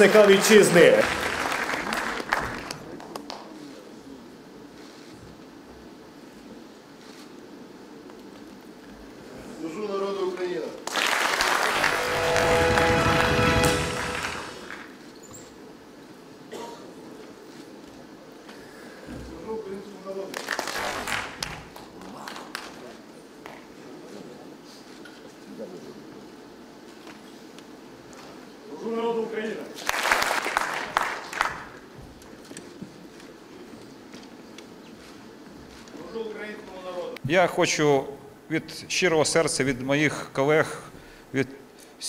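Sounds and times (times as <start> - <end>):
man speaking: 0.0 - 1.4
applause: 0.0 - 3.5, 10.8 - 15.0, 20.3 - 22.8, 29.8 - 31.9.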